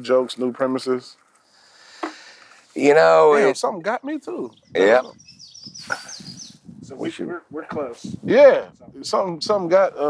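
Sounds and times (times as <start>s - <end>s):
bird singing high notes: 3.9s - 6.7s
brief laugh: 5.8s - 6.2s.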